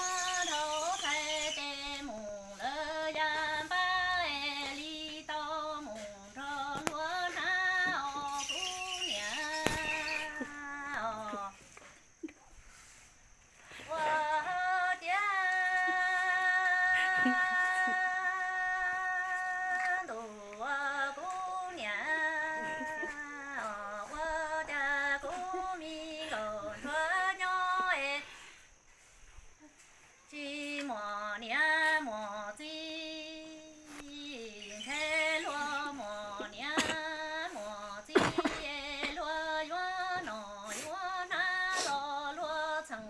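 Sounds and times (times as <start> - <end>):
woman singing unaccompanied: 0.0 - 43.0.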